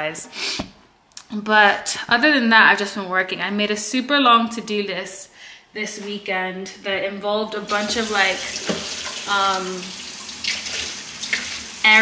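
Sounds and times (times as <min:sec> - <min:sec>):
dishes being washed: 0:07.7 - 0:12.0
tap water running into sink: 0:07.7 - 0:12.0.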